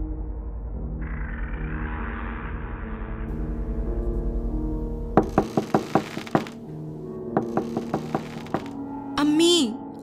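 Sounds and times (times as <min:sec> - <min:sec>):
background music: 0:00.0 - 0:10.0
rapid knocking on door: 0:05.2 - 0:06.6, 0:07.4 - 0:08.8.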